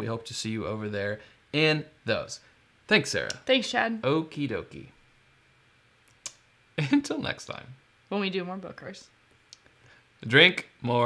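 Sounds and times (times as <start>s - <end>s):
person laughing: 6.8s - 7.2s.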